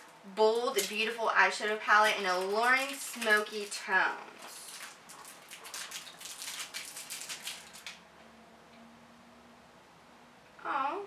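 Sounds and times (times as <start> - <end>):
cardboard package crinkling: 1.9 - 8.0.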